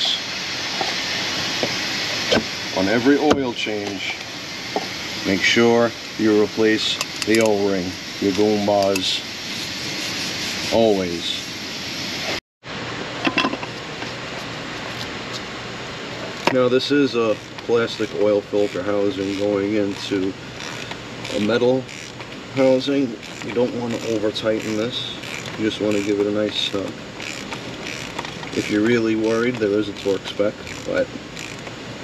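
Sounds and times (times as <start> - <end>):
fan or air handling noise: 0.0 - 32.0
workshop background hiss: 0.0 - 32.0.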